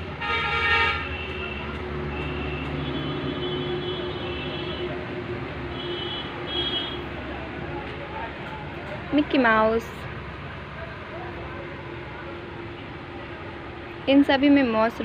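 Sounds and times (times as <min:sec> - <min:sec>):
traffic hum: 0:00.0 - 0:15.0
vehicle horn honking: 0:00.2 - 0:04.9, 0:05.7 - 0:07.1.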